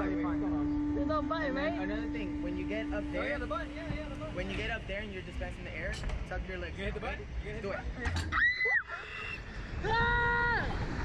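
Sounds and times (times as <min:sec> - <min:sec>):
girls screaming: 0:08.3 - 0:10.7.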